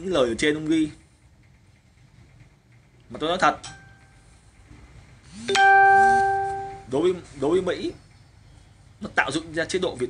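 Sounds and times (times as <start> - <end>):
bell-like chime: 5.5 - 6.9.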